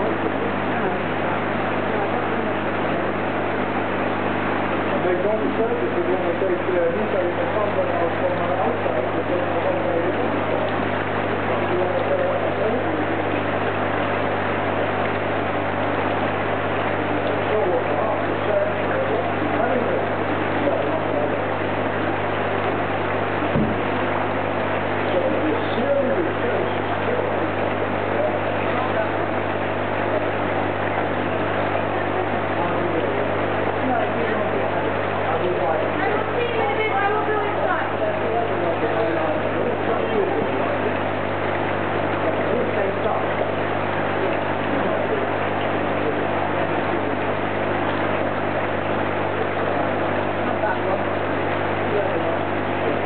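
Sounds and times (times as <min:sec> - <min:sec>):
faint voices: 0:00.0 - 0:53.0
pond equipment humming: 0:00.0 - 0:53.0
rushing water: 0:00.0 - 0:53.0.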